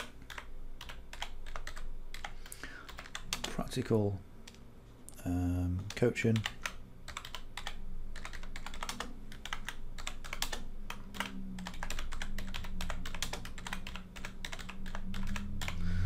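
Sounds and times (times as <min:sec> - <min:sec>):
typing on computer keyboard: 0:00.0 - 0:03.6, 0:05.8 - 0:15.8.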